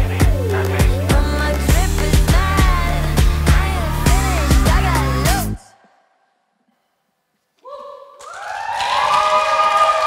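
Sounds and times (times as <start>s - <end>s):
people whooping: 7.7s - 10.0s
applause in echoing hall: 8.2s - 10.0s.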